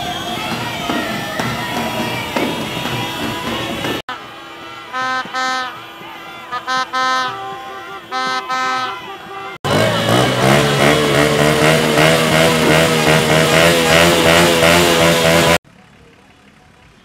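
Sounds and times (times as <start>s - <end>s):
motorcycle and car engines: 0.0s - 6.6s, 9.4s - 17.0s
people shouting: 0.0s - 15.0s
plastic fan horn blowing: 0.0s - 15.6s
street hum: 0.0s - 17.0s.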